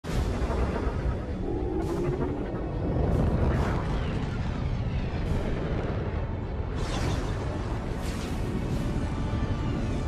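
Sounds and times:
dramatic music: 0:00.0 - 0:10.0.

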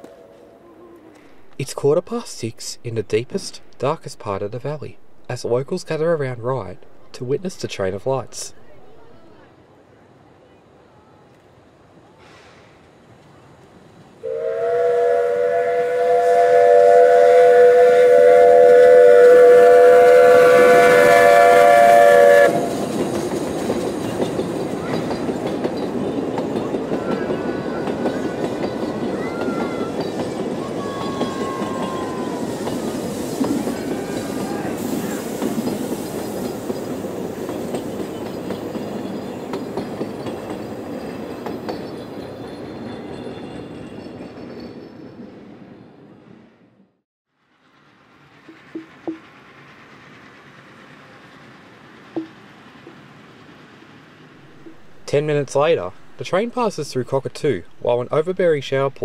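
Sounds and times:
train running and wheel noise: 0:00.0 - 0:46.8, 0:47.4 - 0:59.0
steam locomotive chord whistle: 0:14.2 - 0:23.0.

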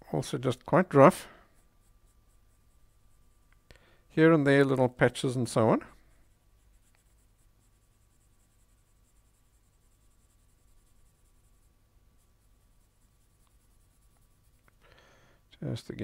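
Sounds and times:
pencil scratching on paper: 0:06.0 - 0:14.6.

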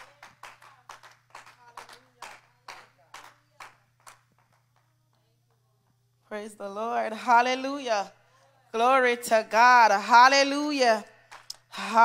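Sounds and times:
congregation hand clapping: 0:00.0 - 0:04.9, 0:11.3 - 0:11.7
low electrical hum: 0:00.0 - 0:12.0.

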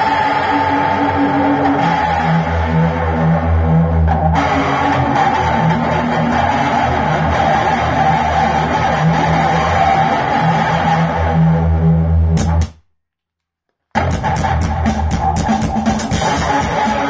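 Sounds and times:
electric guitar through amplifier: 0:00.0 - 0:12.7, 0:13.9 - 0:17.0.

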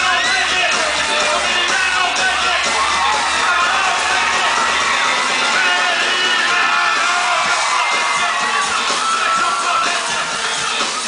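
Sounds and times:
crowd noise: 0:00.0 - 0:11.0
loud amplified concert music: 0:00.0 - 0:11.0.

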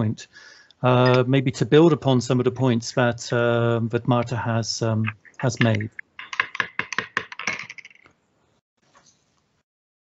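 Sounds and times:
keyboard key clicks: 0:05.0 - 0:08.0.

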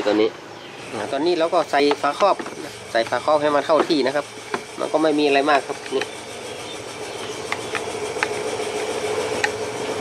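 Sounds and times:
mechanical hum: 0:00.0 - 0:10.0.

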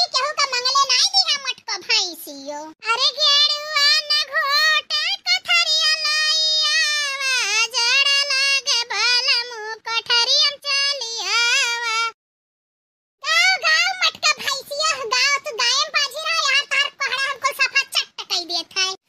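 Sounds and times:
high-pitched cartoon voice singing: 0:00.0 - 0:12.2, 0:13.2 - 0:19.0.

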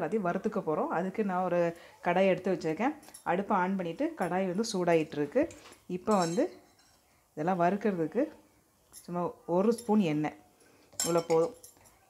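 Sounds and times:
woman speaking: 0:00.0 - 0:06.6, 0:07.4 - 0:08.4.

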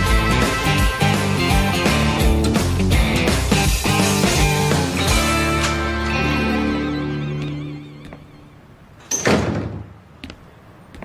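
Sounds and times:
door slamming shut: 0:09.0 - 0:10.0.

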